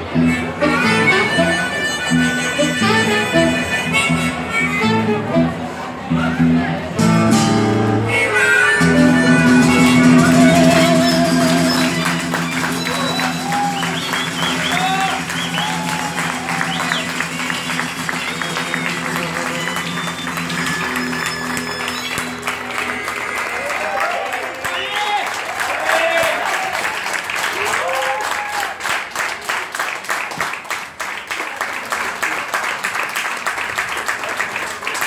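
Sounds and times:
band's held final note: 7.0 - 23.6
audience applauding and cheering: 8.8 - 35.0.

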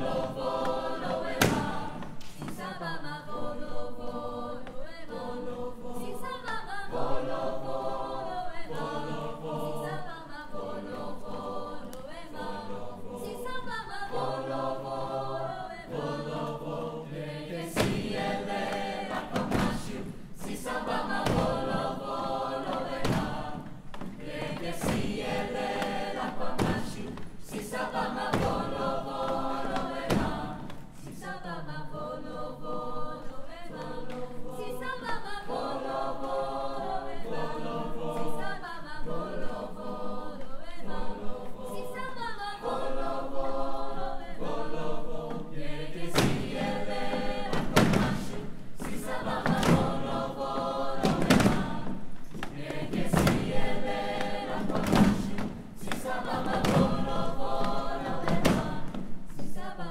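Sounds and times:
choir singing lively piece: 0.0 - 59.9.

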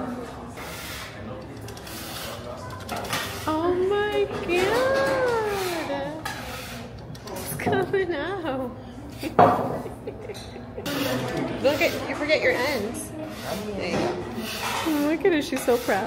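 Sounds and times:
hand-cranked pasta machine turning: 0.8 - 3.8, 4.4 - 7.6.

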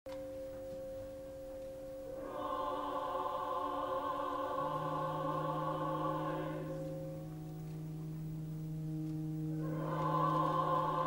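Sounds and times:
distant opera chorus singing: 2.1 - 11.0.

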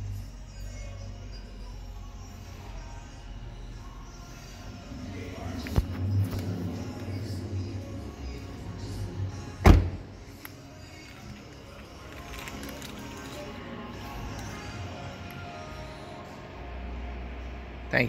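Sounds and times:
background music: 0.0 - 18.0
car door shutting thump: 9.6 - 10.1.

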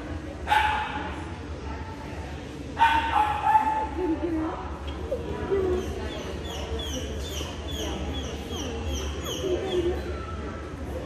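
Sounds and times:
low murmured voices: 0.0 - 11.0.

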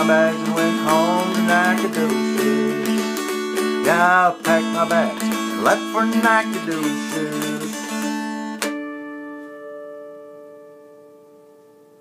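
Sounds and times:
dulcimer chord ringing: 7.7 - 12.0.

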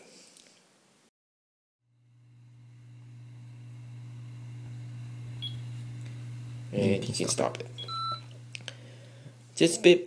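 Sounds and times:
low electrical hum: 1.9 - 10.0.

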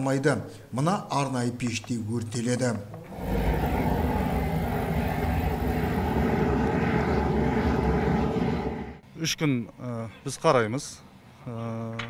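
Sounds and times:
incinerator low rumble: 3.1 - 9.0.

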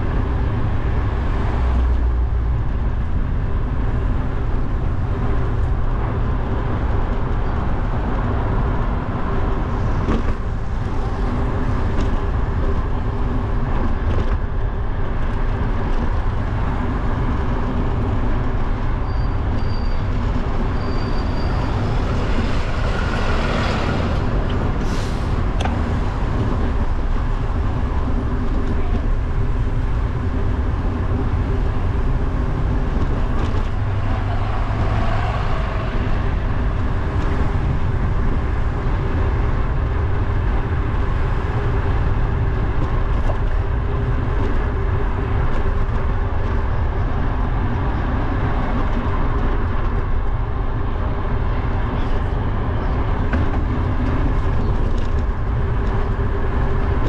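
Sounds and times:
road and traffic noise: 0.0 - 57.0
wind rumble on microphone: 0.0 - 57.0
vehicle passing: 31.8 - 38.7.

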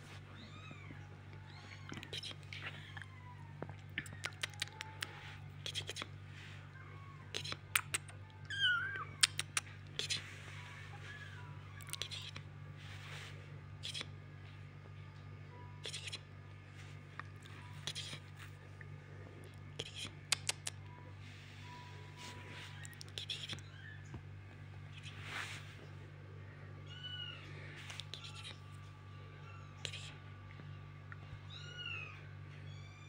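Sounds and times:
soft whispering: 0.0 - 8.3, 9.0 - 14.2, 15.4 - 23.9, 24.7 - 26.8, 27.4 - 31.2
kitten meowing: 8.4 - 9.4
sharp clicks: 20.3 - 20.8.

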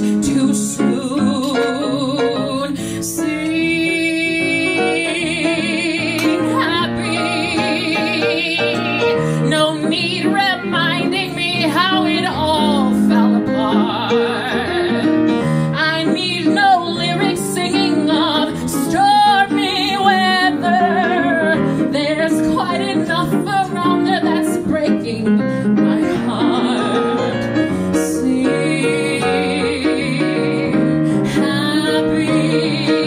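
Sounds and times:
grand piano: 0.0 - 33.0
woman belting show tune: 3.8 - 27.4.

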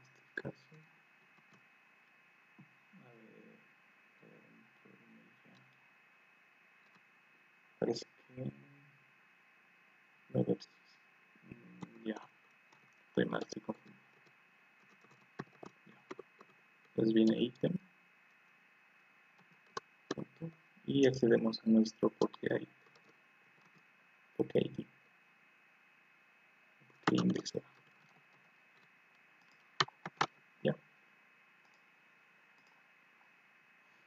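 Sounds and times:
faint steady background hiss: 0.0 - 34.0
keyboard and mouse clicks: 12.7 - 16.6, 27.0 - 30.4.

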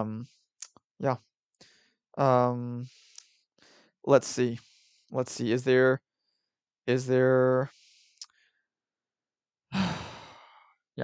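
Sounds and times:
man sighing: 9.8 - 10.5.

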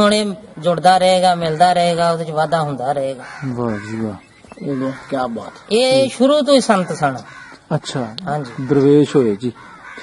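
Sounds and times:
man speaking: 0.0 - 9.6.

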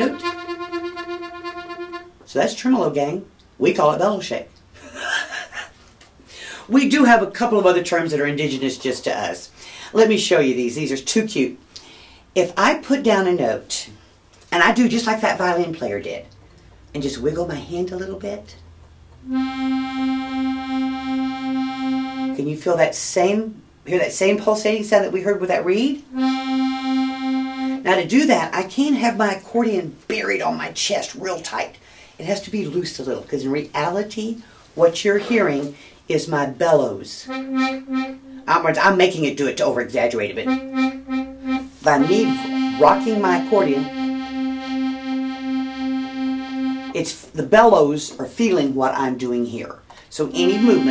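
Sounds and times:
accordion note with bellows vibrato: 0.0 - 2.2, 19.2 - 22.4, 26.1 - 27.9, 37.3 - 38.7, 40.4 - 47.0, 50.4 - 50.9.

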